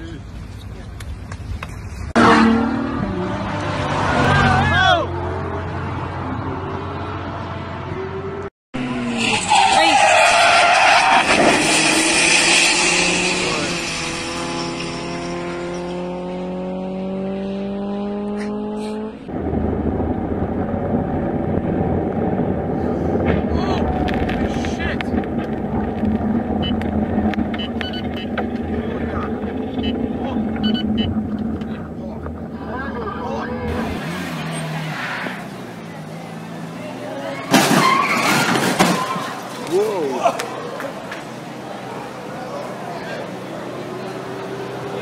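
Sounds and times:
road and vehicle noise: 0.0 - 45.0
race car engine accelerating: 2.2 - 37.5.

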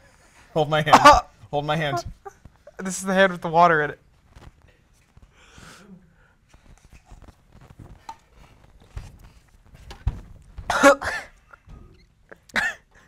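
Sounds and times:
person coughing and gagging: 0.9 - 2.8, 10.7 - 13.0
faint knocks and rustles: 4.0 - 5.4, 6.4 - 10.7.

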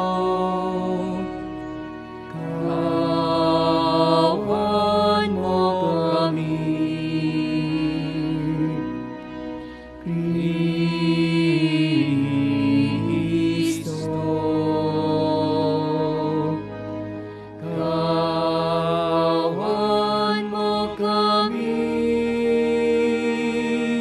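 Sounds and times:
sustained accompaniment: 0.0 - 24.0.

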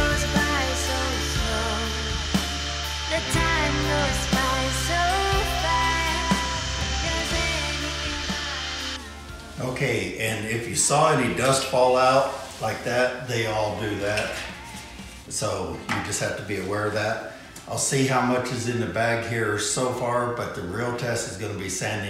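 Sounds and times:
electric drywall sander: 0.0 - 9.0
background music melody: 0.0 - 17.3.

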